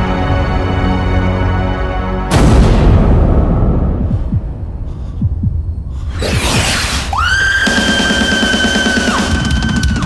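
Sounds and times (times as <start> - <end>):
drums: 2.3 - 10.0.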